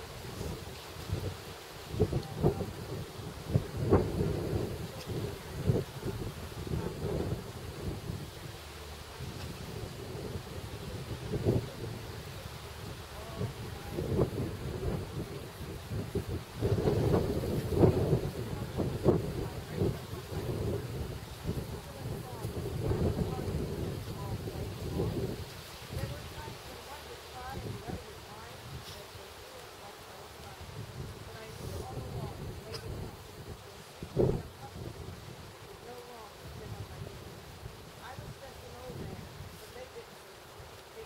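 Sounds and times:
wind buffeting microphone: 0:00.0 - 0:40.8.

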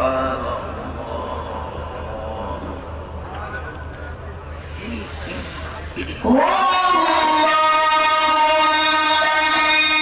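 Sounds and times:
man reciting melodically into microphone: 0:06.2 - 0:10.0.

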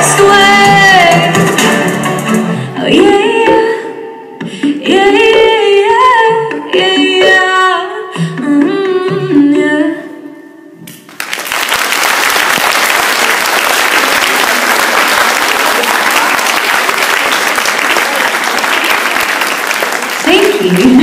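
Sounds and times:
audience clapping: 0:10.9 - 0:21.0.

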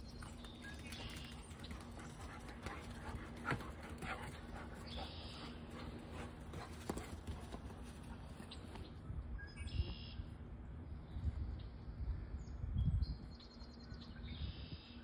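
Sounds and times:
dogs scuffling and thumping: 0:05.7 - 0:08.8.

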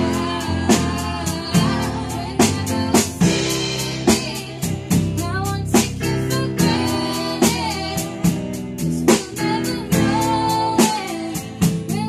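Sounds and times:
electric bass: 0:00.0 - 0:12.0
person singing: 0:09.0 - 0:12.0.

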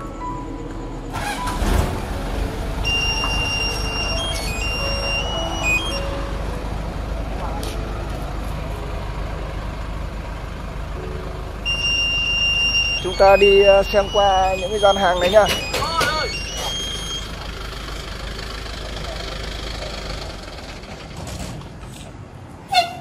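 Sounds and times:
vehicle and street noise: 0:00.0 - 0:23.0
high electronic tune: 0:02.8 - 0:06.2, 0:11.7 - 0:17.4
indistinct voices: 0:12.8 - 0:21.0.

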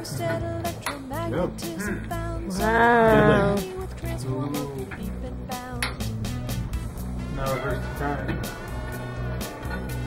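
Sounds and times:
song with steady bass line: 0:00.0 - 0:10.0.

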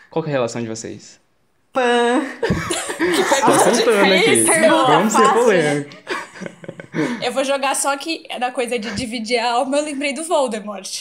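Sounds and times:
voices talking and laughing: 0:01.8 - 0:08.0.

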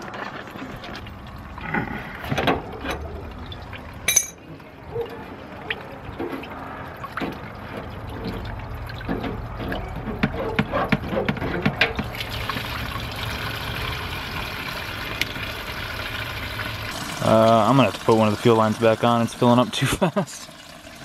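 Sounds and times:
fuel pouring into plastic bucket: 0:12.0 - 0:21.0.

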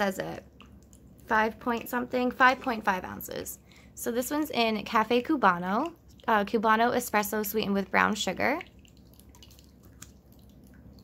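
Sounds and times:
soft water drips: 0:00.0 - 0:11.0.

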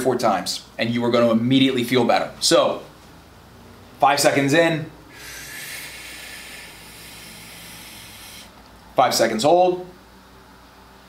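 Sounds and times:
man inhaling slowly: 0:05.1 - 0:08.6.

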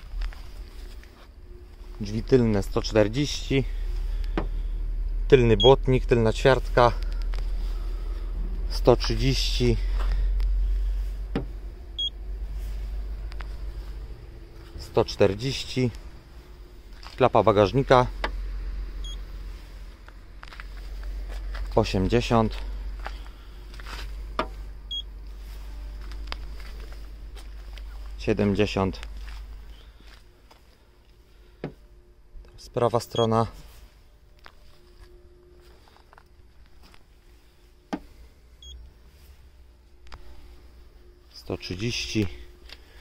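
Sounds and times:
steady low rumble: 0:00.0 - 0:43.0
faint high beep: 0:05.6 - 0:05.8, 0:12.0 - 0:12.2, 0:19.0 - 0:19.2, 0:24.9 - 0:25.1, 0:33.1 - 0:33.4.

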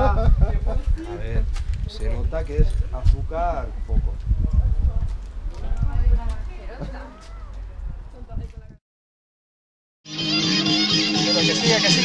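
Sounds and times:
low thumping rumble: 0:00.0 - 0:06.9
people talking quietly: 0:00.0 - 0:08.7.

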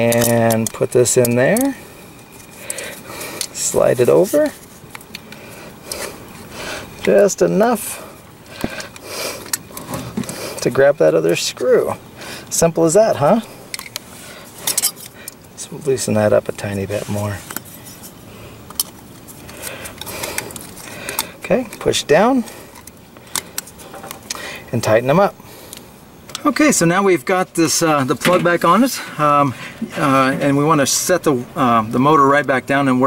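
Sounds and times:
metal bracket clicking and scraping: 0:00.0 - 0:06.1, 0:13.7 - 0:15.4.

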